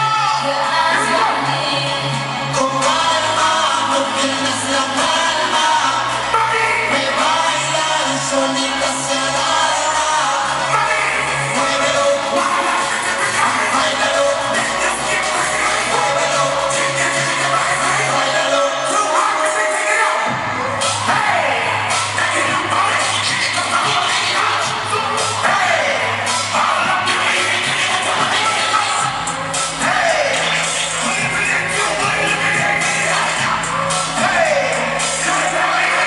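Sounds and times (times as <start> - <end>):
live music with vocals and bass: 0.0 - 36.0.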